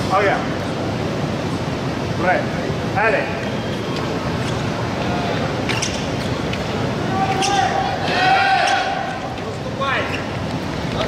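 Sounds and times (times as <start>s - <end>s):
shoe soles squeaking: 3.4s - 9.3s, 9.9s - 11.0s.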